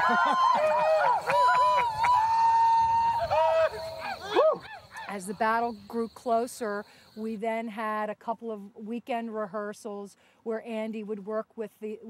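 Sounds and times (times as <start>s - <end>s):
men whooping and yelping: 0.0s - 5.1s.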